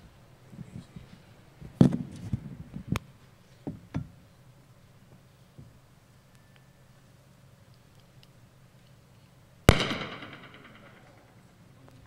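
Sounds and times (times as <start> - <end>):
loud sharp bang: 9.7 - 11.4.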